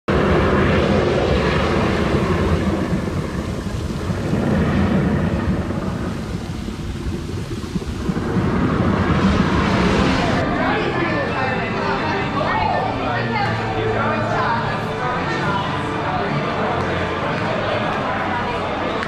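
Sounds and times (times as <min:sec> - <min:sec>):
loud continuous rumbling: 0:00.0 - 0:19.0.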